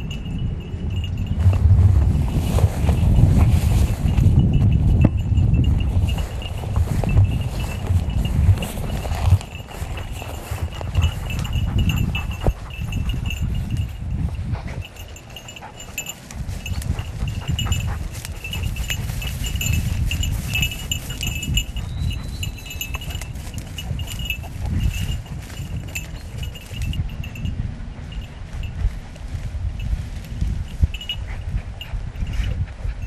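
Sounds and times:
small bell tinkling: 0.0 - 28.9, 29.8 - 33.0
wind and vegetation rustle: 0.0 - 33.0.

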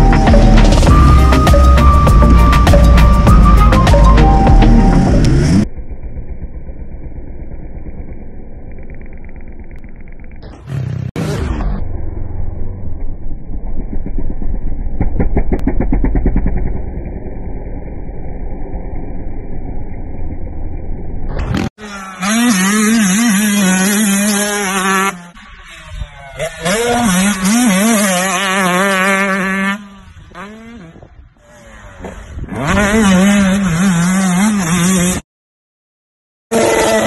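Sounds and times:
dirt bike engine revving: 0.0 - 12.5, 21.3 - 35.2, 36.5 - 37.0
muffled dirt bike engine: 0.0 - 35.2, 36.5 - 37.0.

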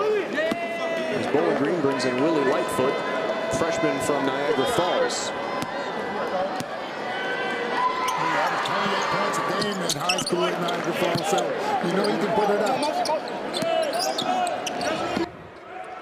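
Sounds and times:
crowd chattering and calling out: 0.0 - 16.0
sneakers squeaking: 8.0 - 15.3.

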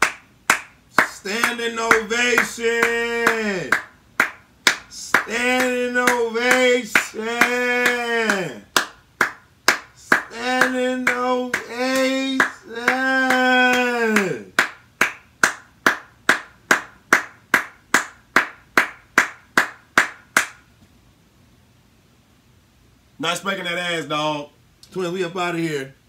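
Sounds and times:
hands clapping slowly: 0.0 - 20.7
man singing long held notes: 1.0 - 3.8, 4.9 - 8.7, 10.0 - 14.5.

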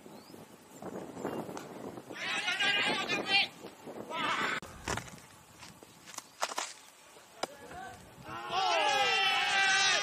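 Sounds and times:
lower voices: 2.0 - 4.6.

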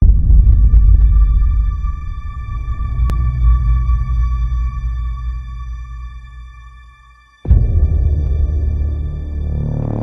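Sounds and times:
deep bass boom: 0.0 - 6.3, 7.5 - 10.0
sustained low rumble: 0.0 - 10.0.

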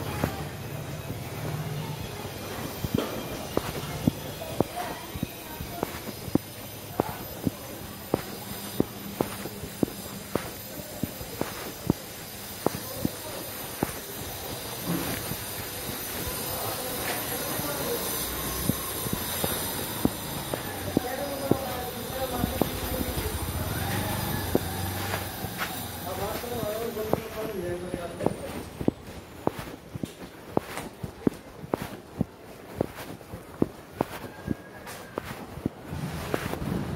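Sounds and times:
indistinct voices: 0.0 - 30.2
footsteps on dusty lane: 0.0 - 36.9
street hum: 0.0 - 36.9.

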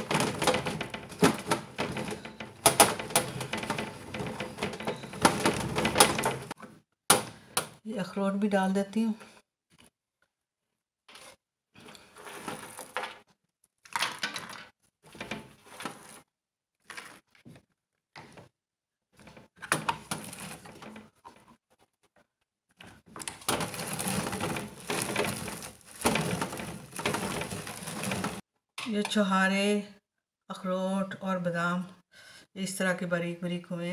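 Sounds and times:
drum grater grinding nuts: 23.5 - 28.4.

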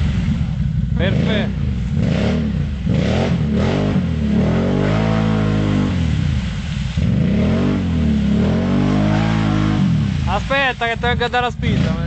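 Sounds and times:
quad bike engine revving: 0.0 - 12.0.

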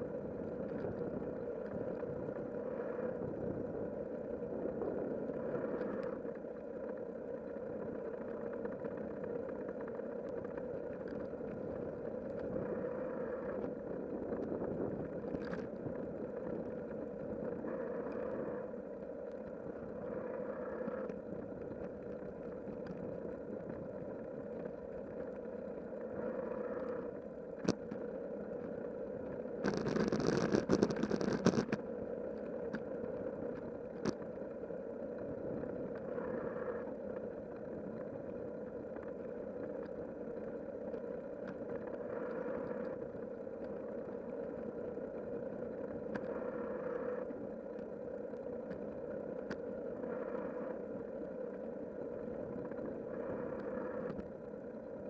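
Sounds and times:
wind: 0.0 - 55.0.

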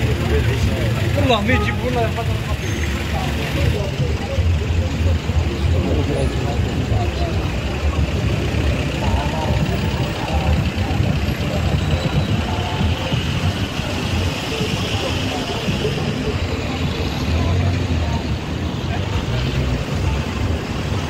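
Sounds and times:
passers-by talking: 0.0 - 21.0.

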